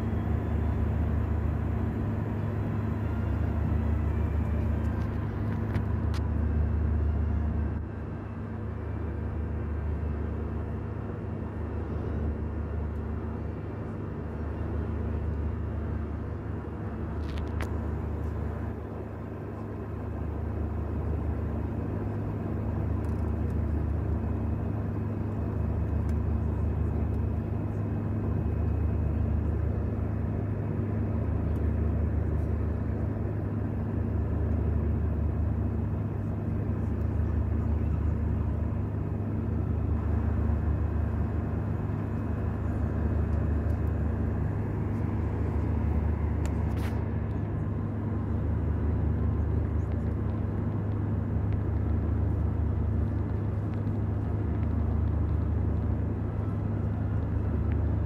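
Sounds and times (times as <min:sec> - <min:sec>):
jet engine cabin rumble: 0:00.0 - 0:58.0.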